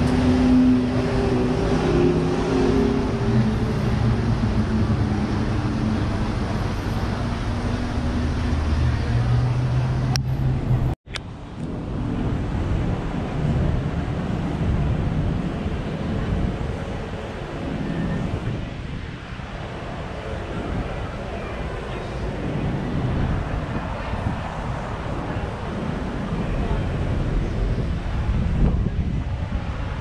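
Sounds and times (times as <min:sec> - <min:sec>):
cars passing: 0:00.0 - 0:30.0
wind on microphone: 0:00.0 - 0:30.0.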